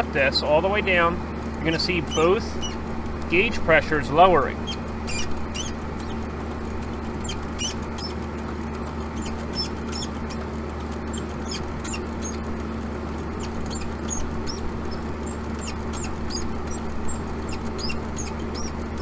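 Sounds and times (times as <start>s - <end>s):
air conditioner unit humming: 0.0s - 19.0s
high-pitched chirps and ticks: 1.4s - 19.0s.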